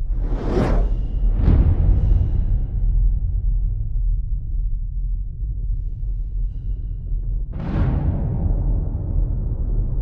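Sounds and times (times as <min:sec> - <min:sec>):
whooshes: 0:00.0 - 0:01.3.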